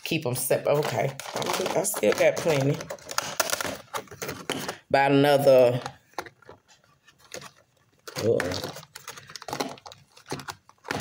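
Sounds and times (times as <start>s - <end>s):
person speaking: 0.0s - 3.0s, 4.5s - 6.0s, 8.0s - 9.4s
plastic blister pack crackling: 0.6s - 4.8s, 5.4s - 11.0s.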